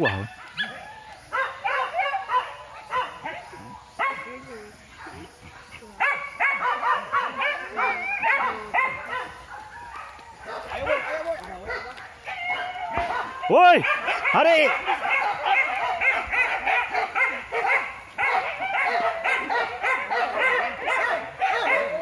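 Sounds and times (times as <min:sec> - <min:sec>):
dogs yelping and baying: 0:00.0 - 0:04.4, 0:06.0 - 0:22.0.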